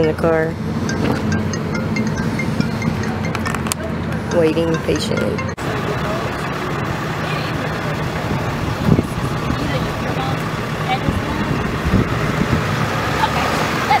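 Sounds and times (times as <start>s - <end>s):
indistinct talking: 0.0s - 14.0s
truck engine idling: 0.0s - 14.0s.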